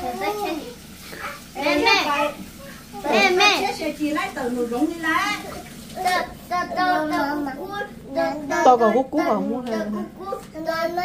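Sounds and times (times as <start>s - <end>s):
girl singing: 6.0s - 11.0s.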